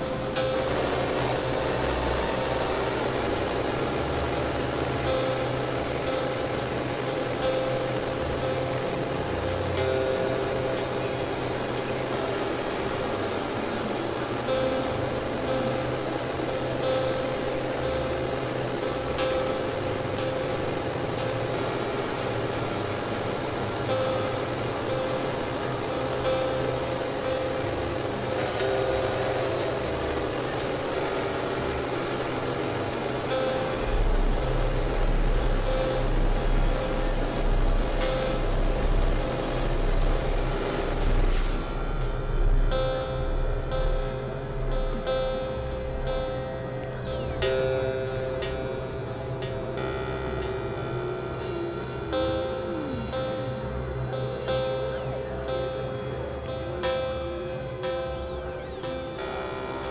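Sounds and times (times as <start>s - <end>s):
synthesizer drone and noise: 0.0s - 59.9s
deep bass tone: 33.7s - 56.8s.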